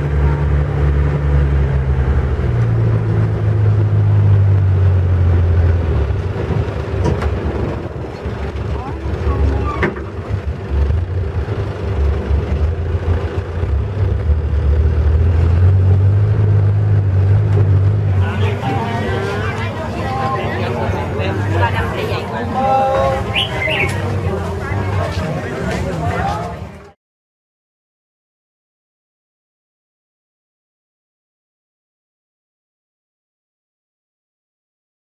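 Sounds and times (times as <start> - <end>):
boat engine droning: 0.0 - 27.0.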